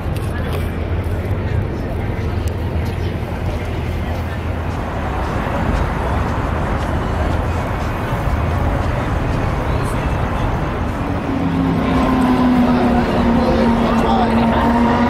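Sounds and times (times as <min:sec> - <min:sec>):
pedestrian chatter: 0:00.0 - 0:15.0
road traffic: 0:00.0 - 0:15.0.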